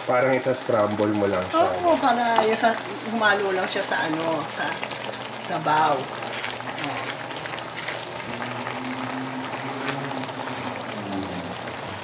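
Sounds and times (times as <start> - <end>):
sauce simmering and sizzling in wok: 0.0 - 12.0
spatula stirring: 4.7 - 10.9.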